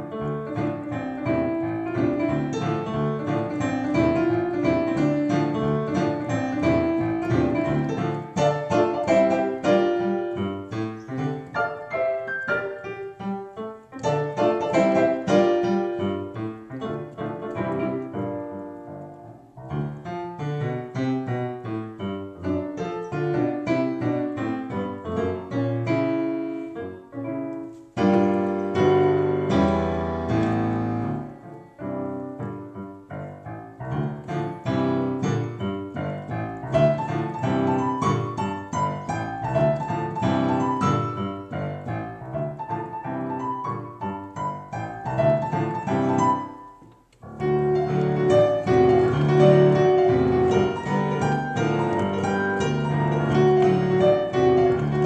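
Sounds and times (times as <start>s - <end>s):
digital piano piece: 0.0s - 55.0s.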